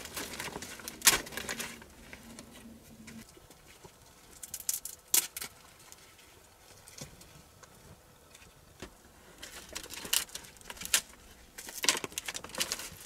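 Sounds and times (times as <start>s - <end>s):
dry twigs snapping and rustling: 0.0s - 13.0s.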